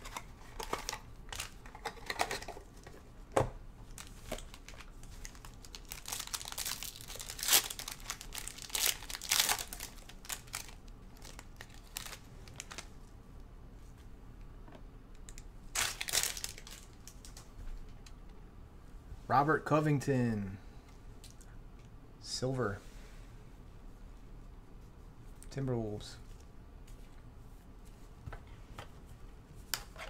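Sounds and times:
foil wrappers crinkling and tearing: 0:04.0 - 0:12.9, 0:15.7 - 0:17.4.

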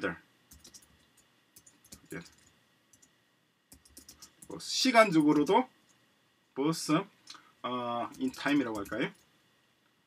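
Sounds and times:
typing on computer keyboard: 0:00.5 - 0:03.1, 0:03.7 - 0:04.6, 0:08.1 - 0:09.2.

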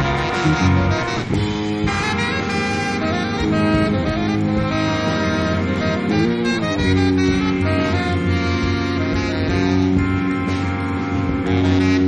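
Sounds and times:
drums: 0:00.0 - 0:12.0
guitar: 0:00.0 - 0:12.0
tenor saxophone: 0:00.0 - 0:12.0.

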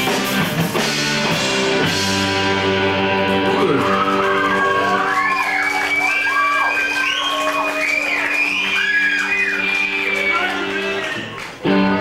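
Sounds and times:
rock band sustained chord: 0:00.0 - 0:03.7
audience whooping and cheering: 0:03.0 - 0:12.0.

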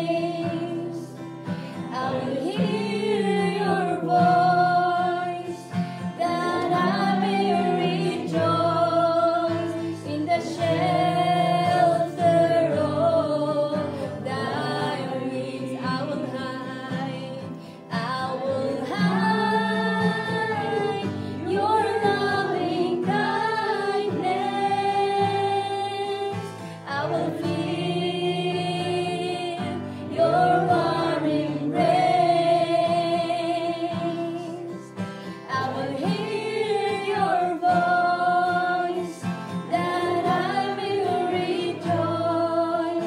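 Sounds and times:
woman singing gospel song: 0:00.0 - 0:01.2, 0:01.8 - 0:43.0.

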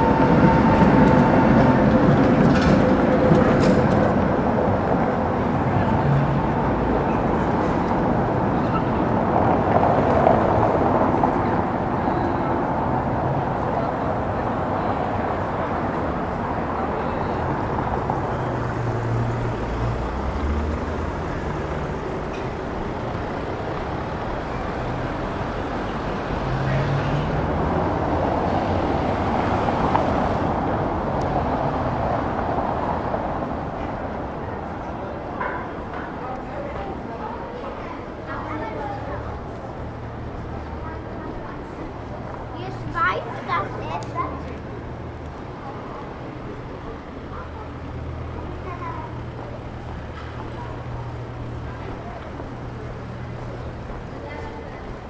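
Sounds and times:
passers-by talking: 0:00.0 - 0:55.0
traffic going by: 0:00.0 - 0:55.0.

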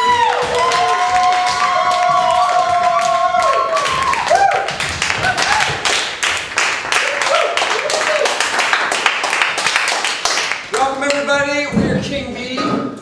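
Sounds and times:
hand clapping: 0:00.0 - 0:11.3.

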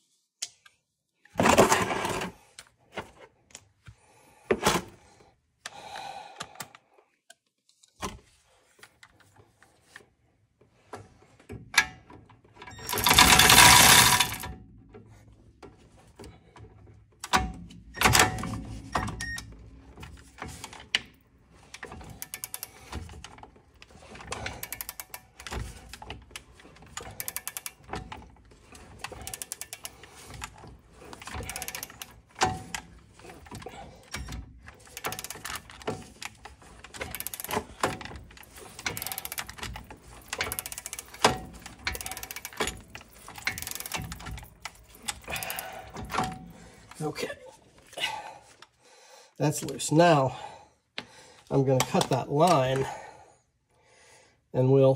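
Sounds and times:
ratchet clicking: 0:12.8 - 0:14.5, 0:21.7 - 0:46.4.

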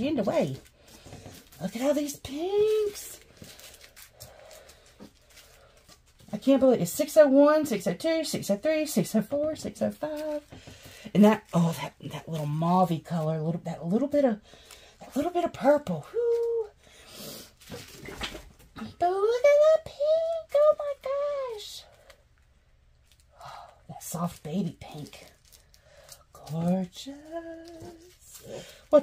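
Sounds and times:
plastic bags crinkling: 0:00.0 - 0:06.3, 0:24.3 - 0:29.0.

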